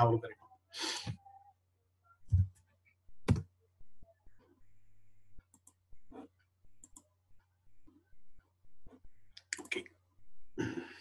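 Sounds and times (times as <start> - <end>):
computer mouse clicks: 5.4 - 7.1, 9.3 - 9.8.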